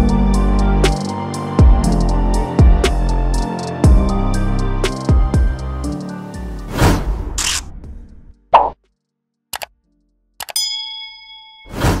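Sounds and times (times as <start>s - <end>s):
mouse-style clicks: 10.4s - 10.6s
bell-like ding: 10.6s - 12.0s.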